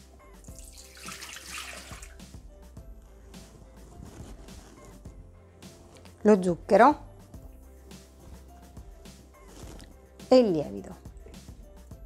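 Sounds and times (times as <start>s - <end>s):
water pouring into metal bowl: 0.5s - 2.2s.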